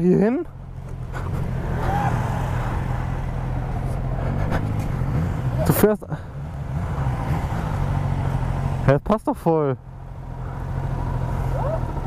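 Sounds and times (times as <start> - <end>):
motorcycle engine idling: 0.0 - 1.7, 2.5 - 12.0.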